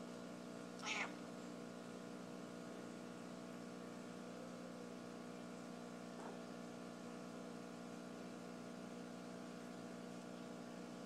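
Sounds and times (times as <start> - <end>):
cat meowing: 0.8 - 1.2.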